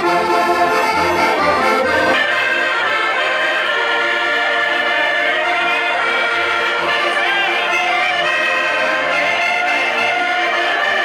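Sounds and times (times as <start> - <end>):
button accordions playing: 0.0 - 11.0.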